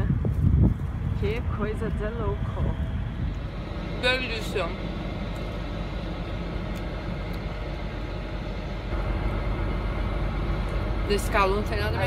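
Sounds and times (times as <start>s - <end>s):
truck engine rumble from inside cab: 0.0s - 12.0s.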